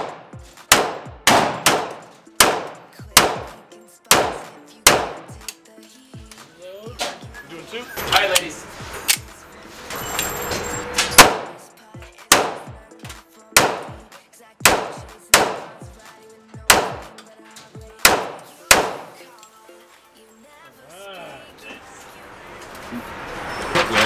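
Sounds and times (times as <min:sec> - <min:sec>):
pistol shots echoing indoors: 0:00.0 - 0:03.5, 0:04.1 - 0:05.2, 0:11.1 - 0:11.6, 0:12.3 - 0:12.7, 0:13.6 - 0:13.9, 0:16.7 - 0:17.1, 0:18.0 - 0:19.2.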